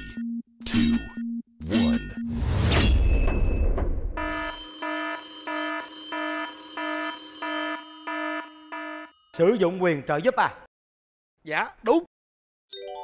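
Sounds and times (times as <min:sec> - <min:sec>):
pulsing electronic alarm ringing: 0:04.2 - 0:09.4.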